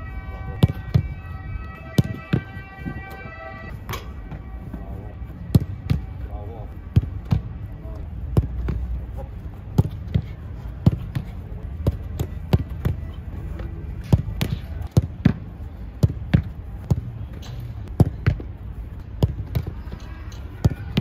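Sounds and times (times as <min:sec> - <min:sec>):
footballs kicked and striking: 0:00.0 - 0:21.0.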